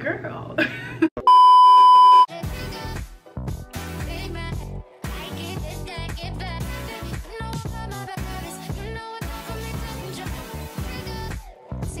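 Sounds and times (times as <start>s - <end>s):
loud electronic beep: 1.3s - 2.3s
pop music with a beat: 2.2s - 12.0s.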